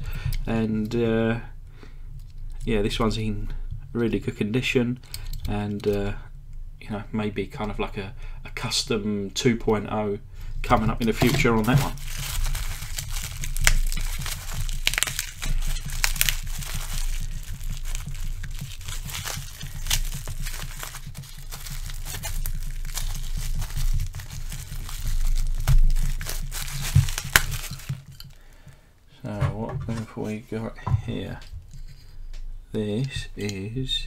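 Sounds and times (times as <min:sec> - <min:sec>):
plastic packaging crinkling: 0:10.6 - 0:28.8.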